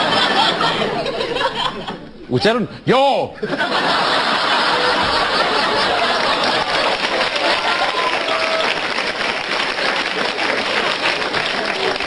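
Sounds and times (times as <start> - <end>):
audience applauding: 4.0 - 12.0.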